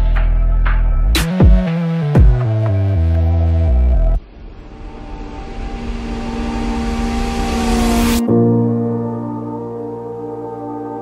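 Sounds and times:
rising whoosh: 0:04.2 - 0:10.7.

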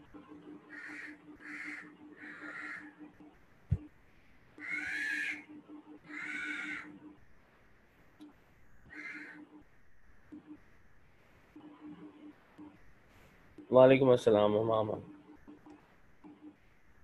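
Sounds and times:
animal calling: 0:00.7 - 0:03.0, 0:04.6 - 0:07.0, 0:08.9 - 0:09.5.

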